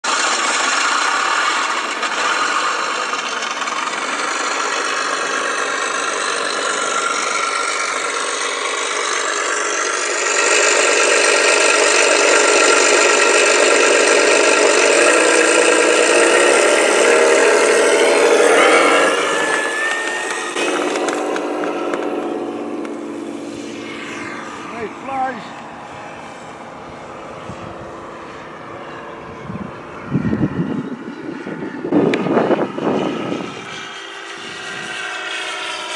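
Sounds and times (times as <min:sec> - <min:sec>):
electric motor and propeller: 0:00.0 - 0:35.9
simulated piston aircraft engine: 0:00.0 - 0:35.9.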